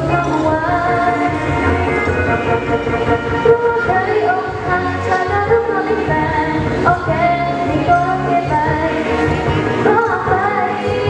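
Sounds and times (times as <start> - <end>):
amplified backing track: 0.0 - 11.0
woman singing into microphone: 0.0 - 11.0.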